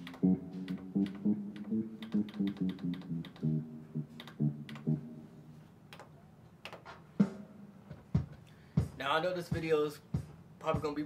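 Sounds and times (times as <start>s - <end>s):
electronic keyboard notes: 0.0s - 6.1s.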